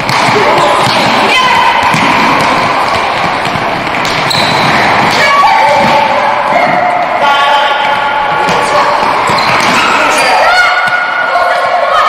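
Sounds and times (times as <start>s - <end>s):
players shouting: 0.0s - 12.0s
sports hall noise: 0.0s - 12.0s.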